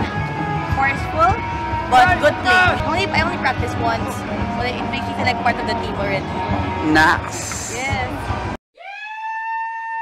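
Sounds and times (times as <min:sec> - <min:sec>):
background music: 0:00.0 - 0:08.6.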